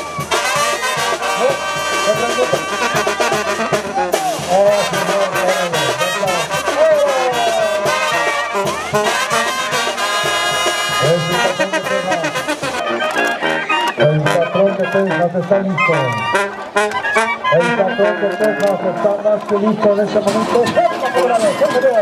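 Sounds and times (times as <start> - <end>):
brass band music: 0.0 - 22.0.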